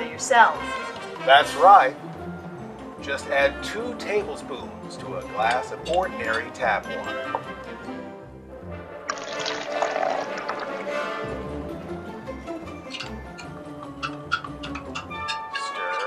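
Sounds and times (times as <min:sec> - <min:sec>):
background music: 0:00.0 - 0:16.0
water pouring into a glass: 0:09.1 - 0:11.4.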